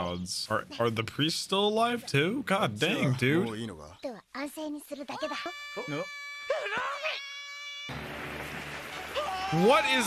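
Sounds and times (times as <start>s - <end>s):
high-pitched cartoon voice crying out: 5.0s - 7.9s.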